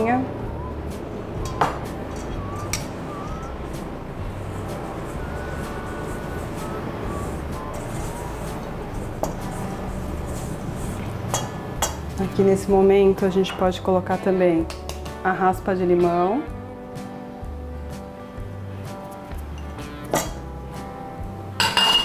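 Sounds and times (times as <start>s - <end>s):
soft background music: 0.0s - 22.0s
spoon stirring dough in metal bowl: 4.4s - 12.0s.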